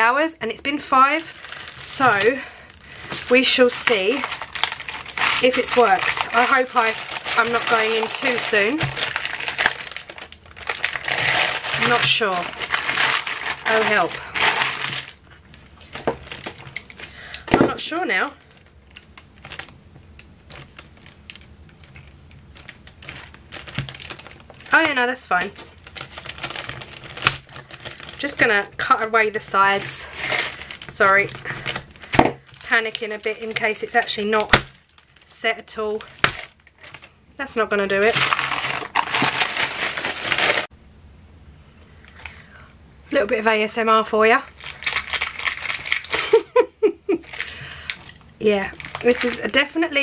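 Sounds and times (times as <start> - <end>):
paper crinkling: 1.0 - 37.2, 37.8 - 40.7, 44.5 - 46.4, 47.2 - 49.7.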